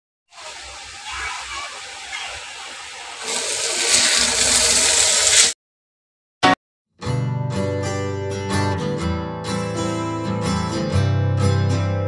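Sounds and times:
potatoes sizzling in hot oil: 0.4 - 5.6.

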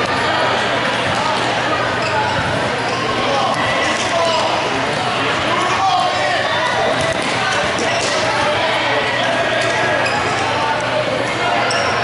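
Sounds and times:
voices calling in a hall: 0.0 - 12.0.

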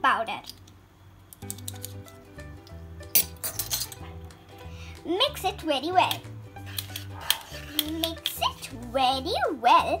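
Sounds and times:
steel measuring spoons clinking: 3.2 - 4.0.

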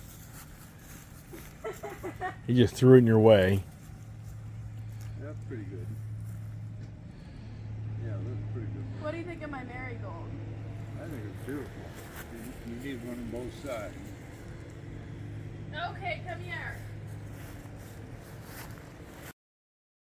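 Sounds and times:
steady low hum: 0.0 - 19.3.

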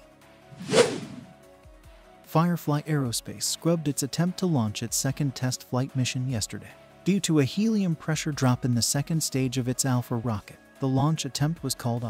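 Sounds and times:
whoosh sound effect: 0.6 - 1.4.

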